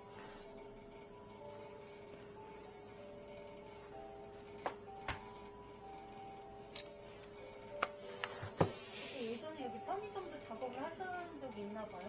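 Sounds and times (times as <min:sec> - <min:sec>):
faint buzzing hum: 0:00.0 - 0:12.0.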